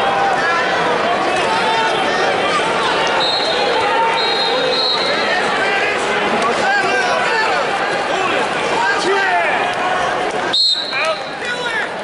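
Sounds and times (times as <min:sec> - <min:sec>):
spectators shouting and talking: 0:00.0 - 0:12.0
referee's whistle: 0:03.2 - 0:05.3, 0:10.5 - 0:11.4.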